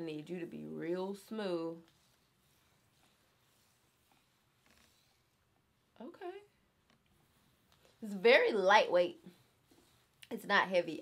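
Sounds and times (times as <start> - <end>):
faint soft sounds: 0.0 - 11.0.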